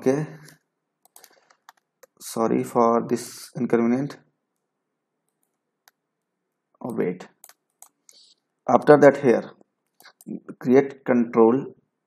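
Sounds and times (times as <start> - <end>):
computer mouse click: 0.4 - 2.2.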